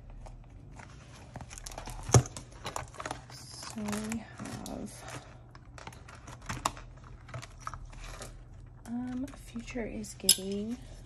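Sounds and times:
paper cash and envelopes rustling: 0.0 - 11.0.

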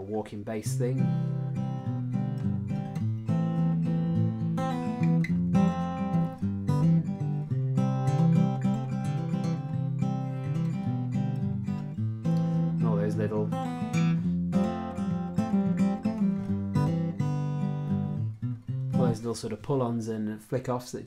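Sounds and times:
acoustic guitar with walking bass: 0.6 - 20.0.

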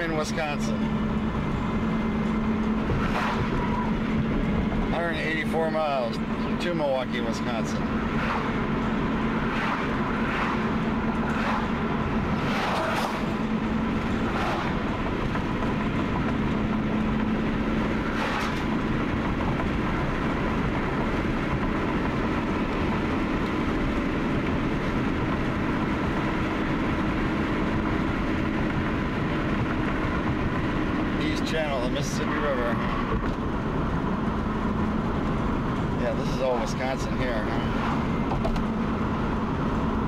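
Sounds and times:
car road noise rumble: 0.0 - 40.0.

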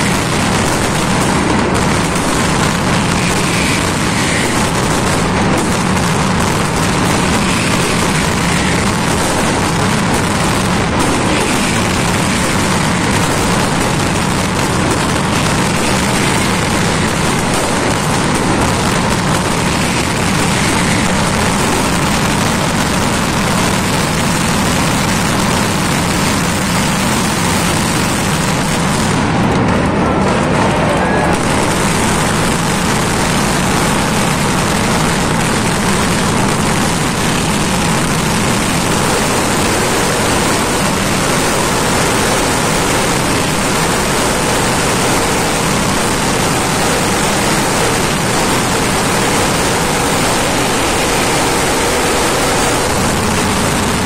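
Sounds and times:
firecracker barrage rattle: 0.0 - 54.0.

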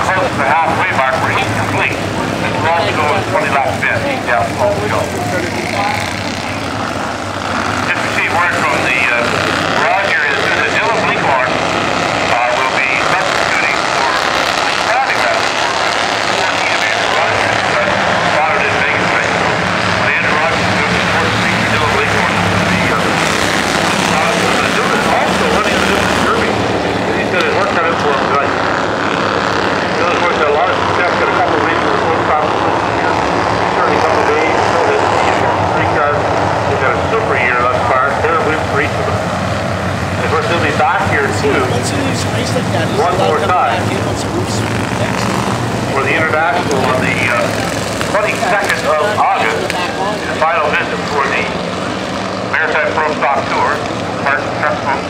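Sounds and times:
race car engines buzzing: 0.0 - 55.0.

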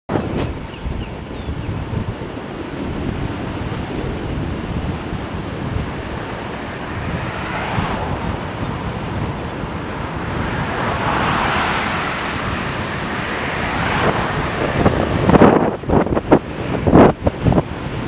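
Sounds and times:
wind buffeting microphone: 0.1 - 18.0.

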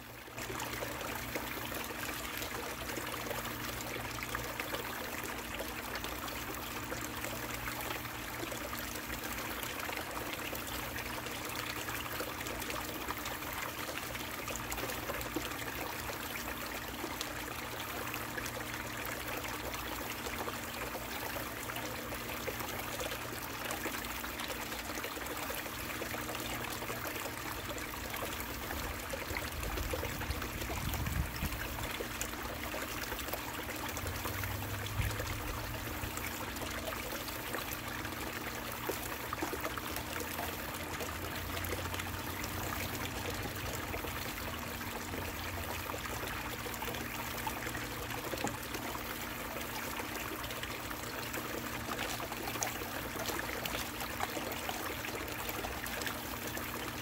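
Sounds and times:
water pouring into a bucket: 0.0 - 57.0.

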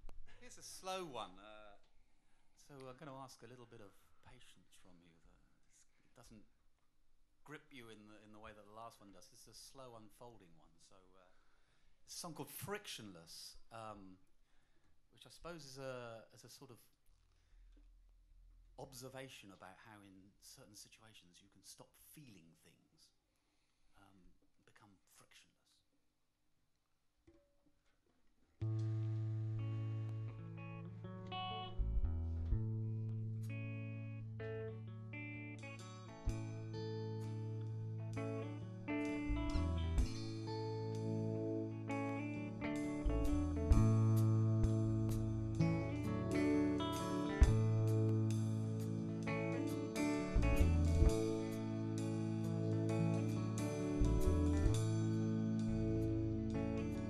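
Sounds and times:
held bass and keyboard notes: 28.6 - 57.0
picked electric guitar notes: 28.6 - 57.0.

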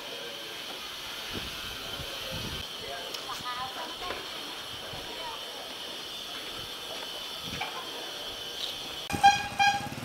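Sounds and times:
motorbike horn toots: 9.1 - 10.0.

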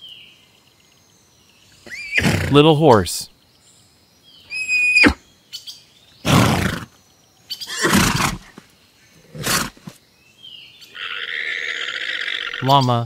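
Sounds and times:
horse snorting: 6.2 - 6.9, 7.7 - 8.6, 9.2 - 9.9.

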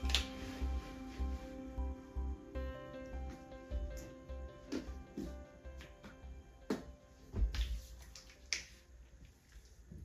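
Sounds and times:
soft rustling: 0.0 - 2.0.

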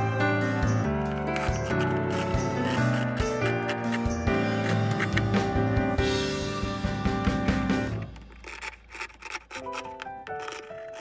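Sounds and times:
background music: 0.0 - 11.0
scissors cutting fabric: 1.2 - 5.4, 8.0 - 11.0.

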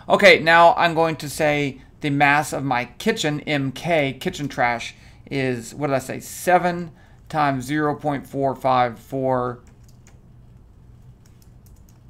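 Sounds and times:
keyboard keystrokes: 9.6 - 10.2, 11.1 - 12.0.

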